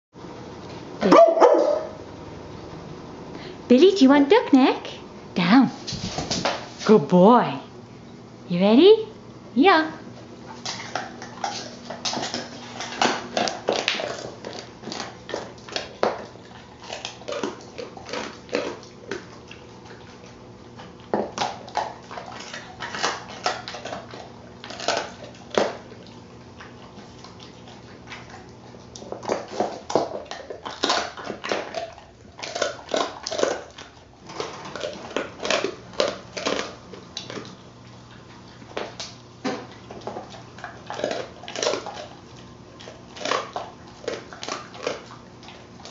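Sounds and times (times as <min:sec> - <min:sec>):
dog chewing and crunching: 0:00.5 - 0:02.6, 0:05.8 - 0:07.1, 0:10.0 - 0:45.9.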